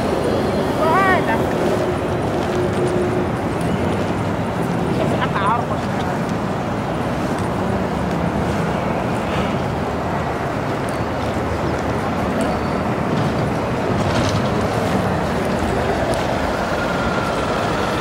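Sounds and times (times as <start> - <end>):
chatter of passers-by: 0.0 - 18.0
traffic noise: 0.0 - 18.0.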